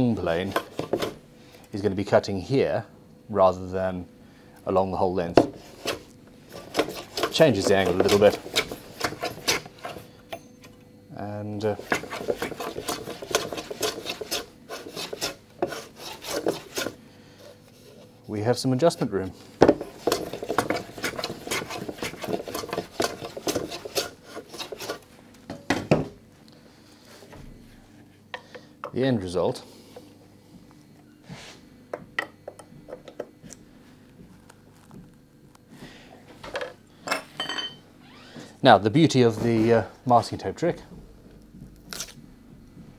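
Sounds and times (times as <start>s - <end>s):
hand plane scraping wood: 5.6s - 10.0s, 11.7s - 17.0s, 19.8s - 25.0s
faint metallic ring: 37.1s - 37.8s.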